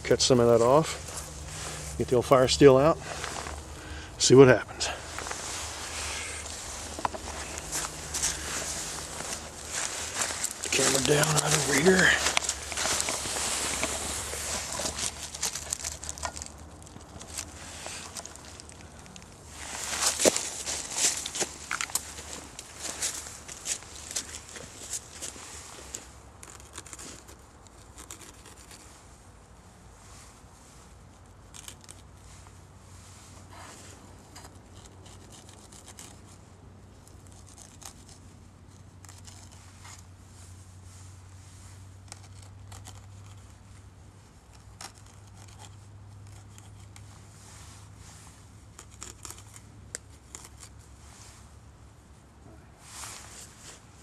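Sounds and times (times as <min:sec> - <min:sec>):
low steady rumble: 0:00.0 - 0:26.8
footsteps crunching on snow: 0:00.2 - 0:03.9, 0:04.9 - 0:26.0
fibres snapping and tearing: 0:06.4 - 0:25.4, 0:48.7 - 0:50.8.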